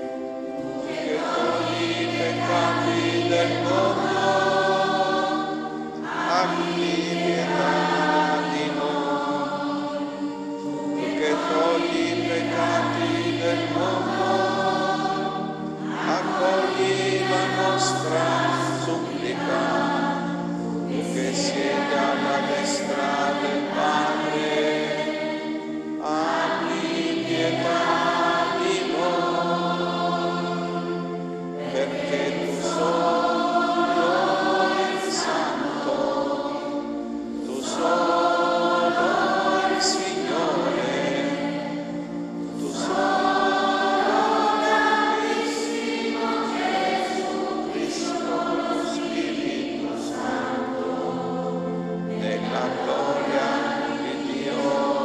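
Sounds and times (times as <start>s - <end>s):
church choir singing: 0.0s - 55.0s.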